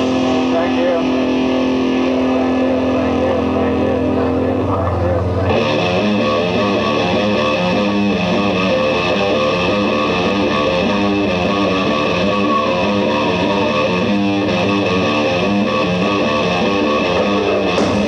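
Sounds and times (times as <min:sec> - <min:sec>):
distorted electric guitar note: 0:00.0 - 0:18.0
rock band playing: 0:00.0 - 0:18.0.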